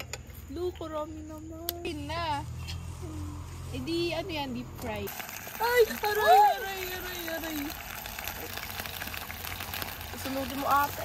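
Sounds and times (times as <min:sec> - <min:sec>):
oil spitting crackles: 0:04.8 - 0:11.0
meat sizzling in oil: 0:05.1 - 0:11.0.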